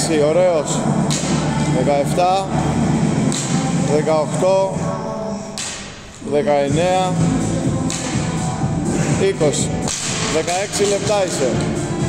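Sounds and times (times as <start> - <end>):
man counting aloud: 6.2 - 7.4.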